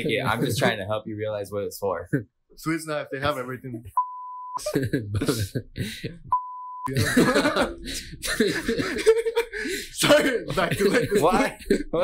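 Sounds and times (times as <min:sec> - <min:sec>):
censor bleep tone: 0:04.0 - 0:04.6, 0:06.3 - 0:06.9
laughter: 0:04.6 - 0:06.2, 0:06.9 - 0:09.6, 0:10.5 - 0:11.9.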